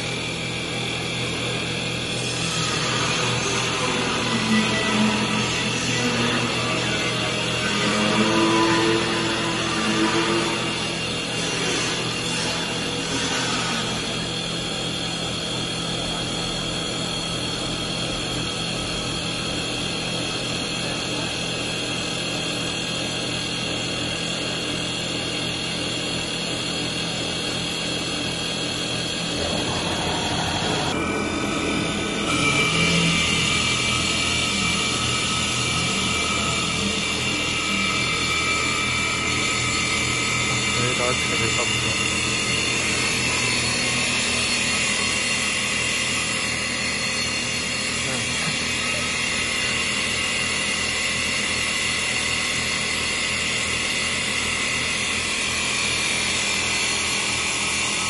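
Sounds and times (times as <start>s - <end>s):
lathe cutting wood: 0.0s - 58.0s
machine whine with tones: 0.0s - 58.0s.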